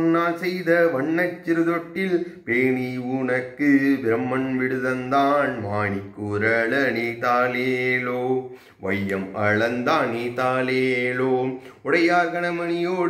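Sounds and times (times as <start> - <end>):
man singing a lullaby: 0.0 - 13.0.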